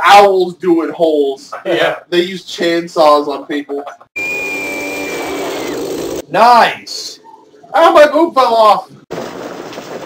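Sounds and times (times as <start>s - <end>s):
thin high tone: 4.2s - 6.2s
chainsaw running: 4.3s - 6.2s.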